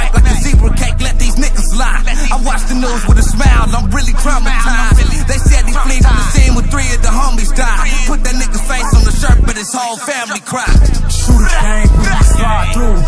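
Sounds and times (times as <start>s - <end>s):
deep bass and kick drum: 0.0s - 9.6s, 10.7s - 13.0s
rapping over a beat: 0.0s - 13.0s.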